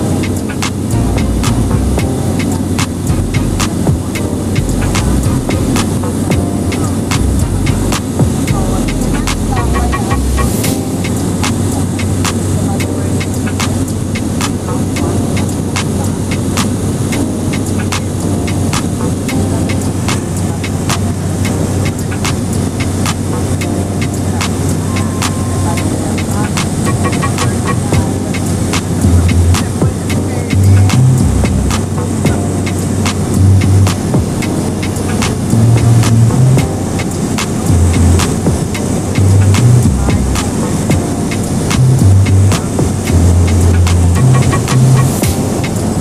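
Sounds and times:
propeller plane engine drone: 0:00.0 - 0:46.0.

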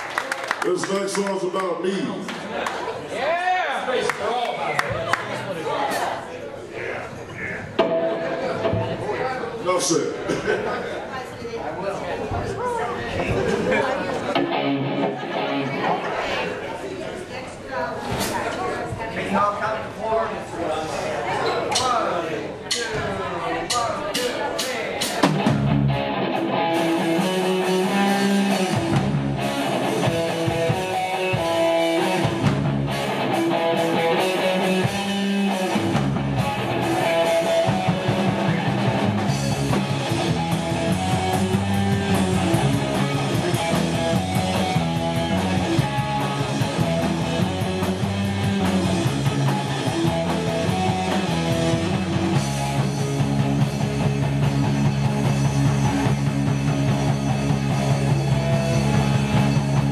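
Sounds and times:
rock band playing: 0:07.7 - 0:09.1, 0:14.2 - 0:16.2, 0:23.6 - 0:59.9
heavy low notes: 0:23.6 - 0:59.9.

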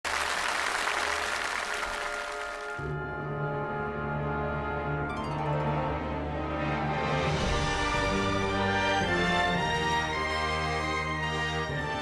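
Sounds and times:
audience applauding: 0:00.0 - 0:02.9.

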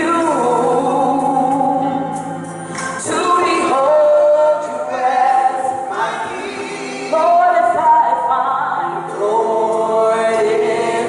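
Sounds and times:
women singing gospel: 0:00.0 - 0:02.1, 0:02.8 - 0:11.0
accompanying music: 0:00.0 - 0:11.0.

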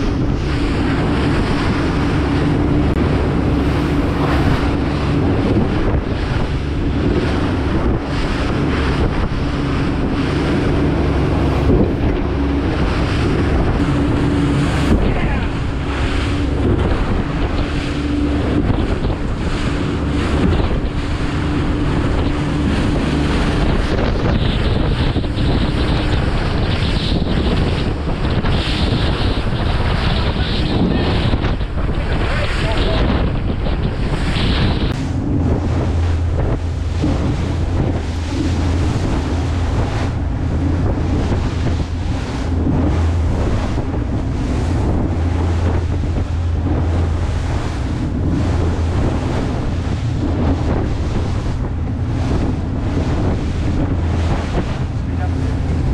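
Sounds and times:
boat engine hum: 0:00.0 - 0:55.9
spray and waves along hull: 0:00.0 - 0:55.9
wind buffeting microphone: 0:00.0 - 0:55.9.

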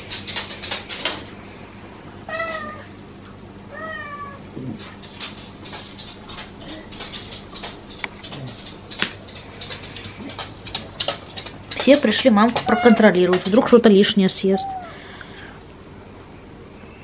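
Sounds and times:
steady low hum: 0:00.0 - 0:17.0
cat meowing: 0:02.3 - 0:02.9, 0:03.7 - 0:04.4, 0:12.6 - 0:13.1, 0:14.5 - 0:15.0.

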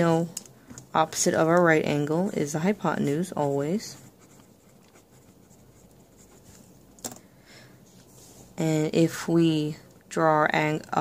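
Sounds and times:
pencil scratching on paper: 0:02.4 - 0:06.6.

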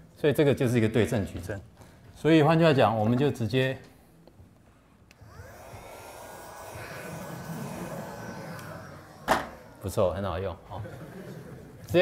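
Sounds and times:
small motor whining and humming: 0:05.1 - 0:10.2.

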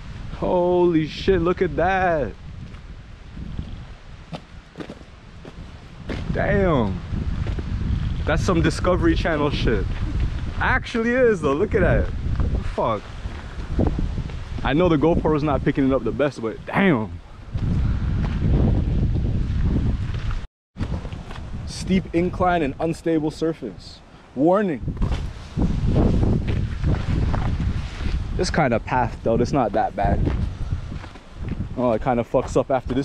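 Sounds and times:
wind rumble on microphone: 0:00.0 - 0:24.0, 0:24.7 - 0:33.0
footsteps on dirt trail: 0:02.6 - 0:06.5, 0:07.1 - 0:08.3, 0:09.8 - 0:10.6, 0:12.1 - 0:14.8, 0:17.5 - 0:21.6, 0:25.0 - 0:28.4, 0:29.0 - 0:33.0.

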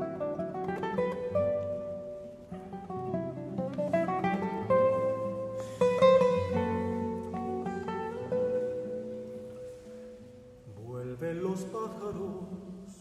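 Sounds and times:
classical guitars playing: 0:00.0 - 0:13.0.

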